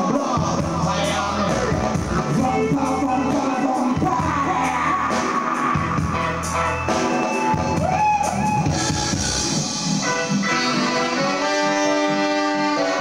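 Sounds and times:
person singing: 0.0 - 6.7
drums and cymbals: 0.0 - 13.0
heavy bass: 0.0 - 13.0
live dub band playing: 0.0 - 13.0.

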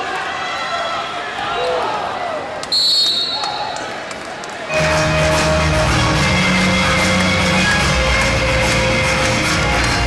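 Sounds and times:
shrill referee whistle blast: 2.7 - 3.7
music: 4.7 - 10.0.

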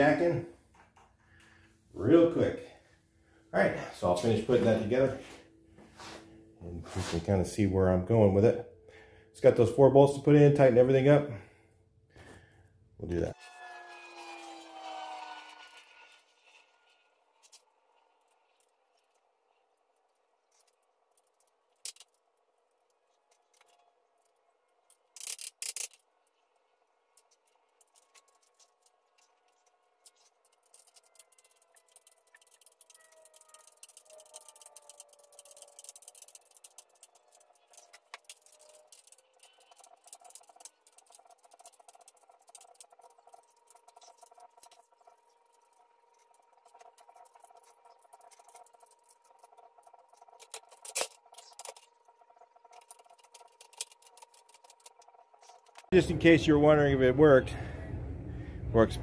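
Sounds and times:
metal bolts and tools rattling: 24.9 - 26.1, 27.2 - 51.9
tools clattering: 27.2 - 55.9.

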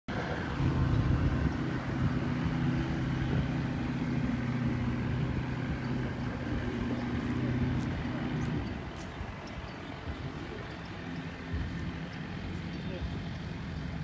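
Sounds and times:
seaplane engine and propeller: 0.1 - 14.0.

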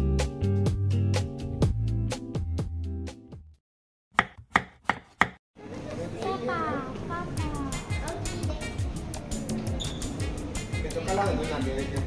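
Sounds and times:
knife chopping on cutting board: 4.2 - 5.4.

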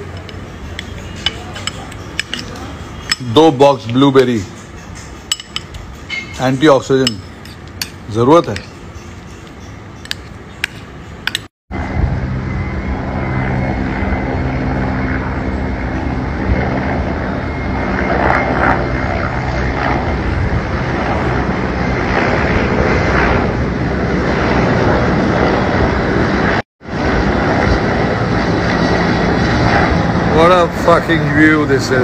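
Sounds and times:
helicopter engine and rotor drone: 0.0 - 32.0.

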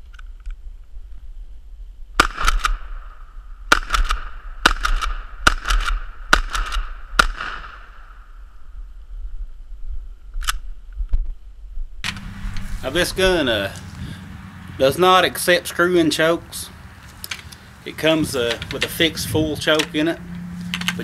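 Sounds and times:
shotgun shots: 2.2 - 8.3.

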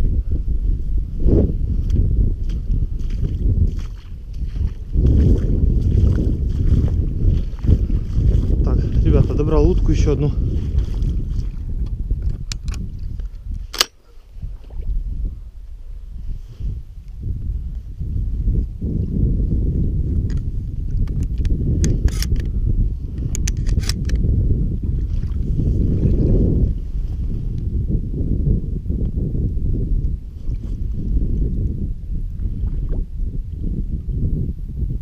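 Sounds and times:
sharp clicks: 13.7 - 14.0, 21.0 - 22.5
legs sloshing through water: 25.0 - 26.2.

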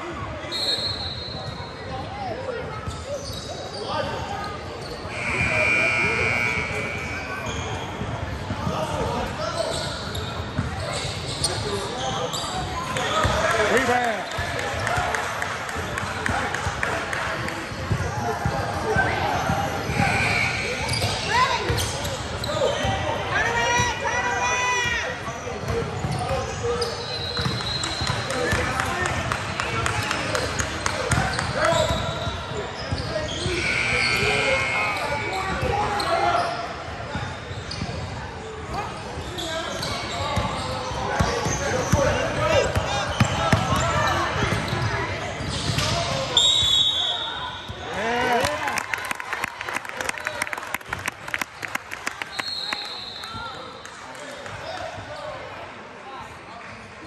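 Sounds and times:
voices echoing in hall: 0.0 - 57.0.

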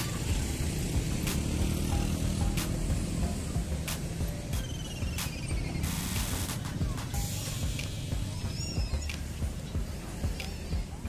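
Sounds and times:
background music: 0.0 - 11.0
low traffic rumble: 0.0 - 11.0
vehicle engine running: 0.0 - 11.0.

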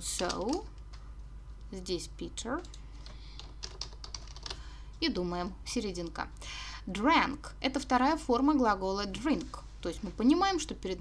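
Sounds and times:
computer keyboard typing: 0.0 - 0.9, 2.6 - 4.6.

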